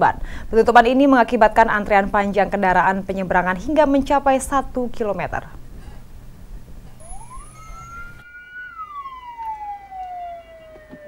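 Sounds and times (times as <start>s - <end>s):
ambulance siren wailing: 7.0s - 11.0s.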